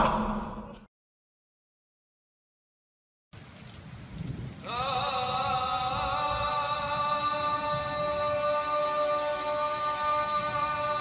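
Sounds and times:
rain-like noise: 3.3 - 11.0.

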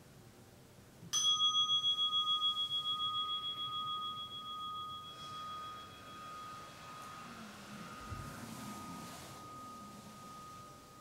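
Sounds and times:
meditation bell ringing: 1.2 - 11.0.

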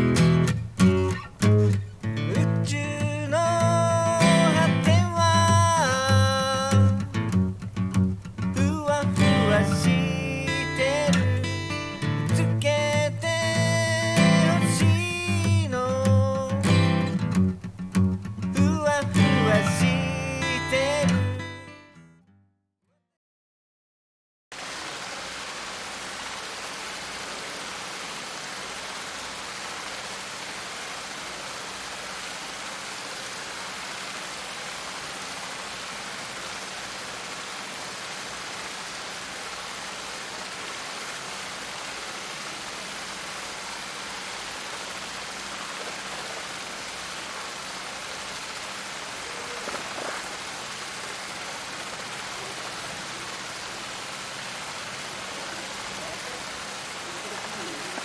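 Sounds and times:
outdoor background hiss: 0.0 - 21.9, 24.6 - 58.0.

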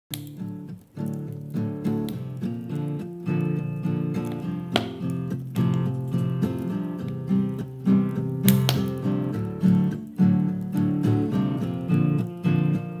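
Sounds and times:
acoustic guitar picking: 0.2 - 13.0.

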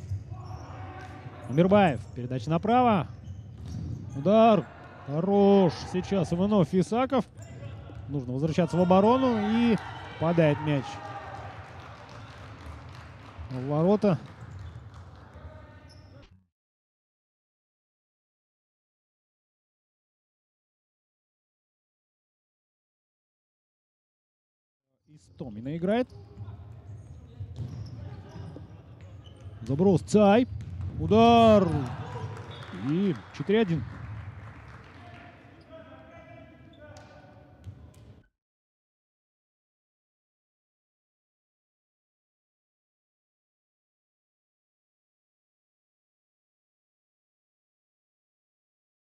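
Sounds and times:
distant voices in sports hall: 0.0 - 16.4, 25.1 - 38.3
held shout: 8.6 - 11.5
ball striking court: 30.4 - 32.7.

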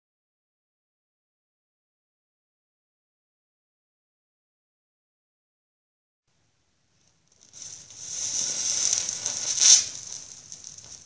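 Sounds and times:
burning mixture hissing: 6.9 - 11.0.

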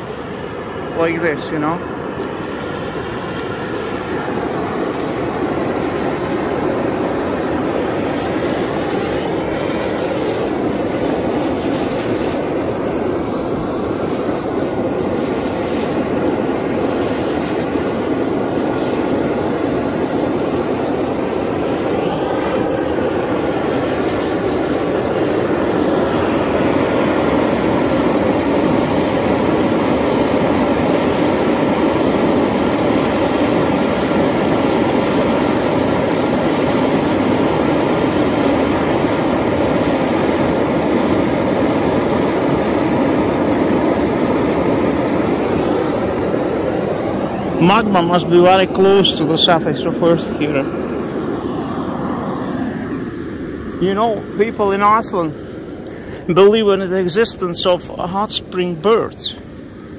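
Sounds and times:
steam jetting with rushing hiss: 0.0 - 58.2.

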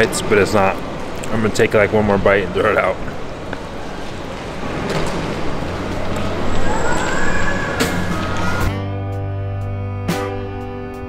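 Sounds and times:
steady background noise: 0.0 - 8.8
jazz music with saxophone: 8.0 - 11.0.

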